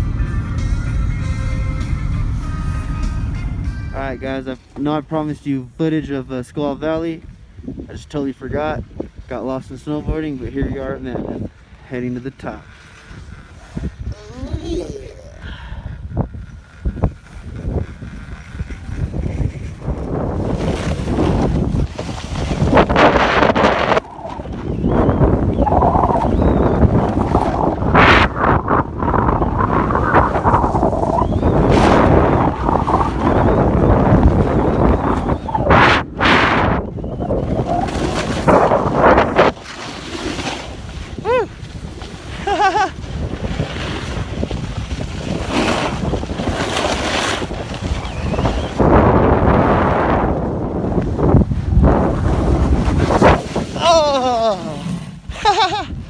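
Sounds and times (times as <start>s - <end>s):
wind buffeting microphone: 6.0s - 56.0s
snowboard scraping through snow: 16.5s - 55.8s.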